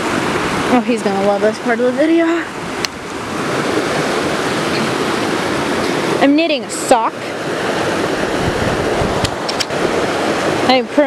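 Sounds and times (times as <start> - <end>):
fast-flowing creek rushing: 0.0 - 11.0
low microphone rumble: 0.0 - 11.0.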